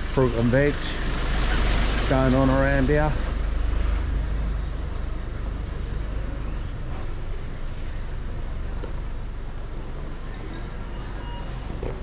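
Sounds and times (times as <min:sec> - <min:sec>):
street noise: 0:00.0 - 0:12.0
truck engine idling: 0:00.0 - 0:12.0.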